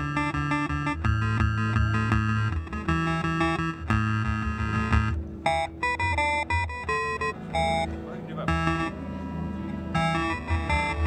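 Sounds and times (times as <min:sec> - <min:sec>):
electric guitar playing: 0:00.0 - 0:11.0.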